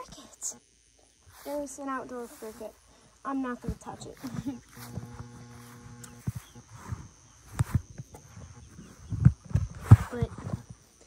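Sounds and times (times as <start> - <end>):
footsteps on grass: 1.1 - 11.0.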